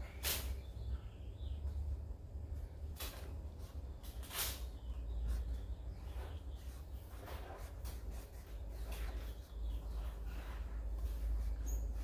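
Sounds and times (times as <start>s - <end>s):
low steady hum: 0.0s - 12.0s
paintbrush swishing on canvas: 3.0s - 12.0s.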